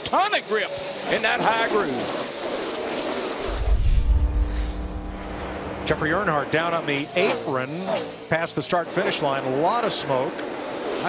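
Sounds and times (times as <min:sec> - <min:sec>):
deep bass boom: 0:03.4 - 0:06.3
held chord of tones: 0:03.4 - 0:06.3.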